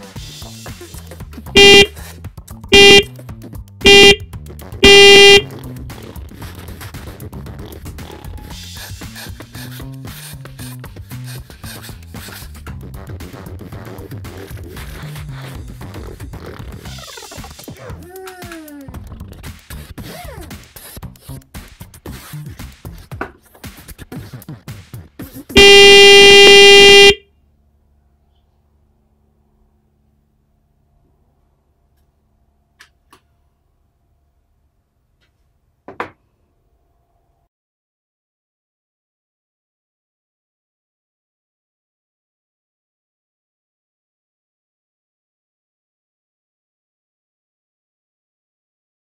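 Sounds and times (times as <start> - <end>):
loud electronic buzzer: 1.6 - 1.9, 2.7 - 3.1, 3.8 - 4.2, 4.8 - 5.5, 25.6 - 27.2.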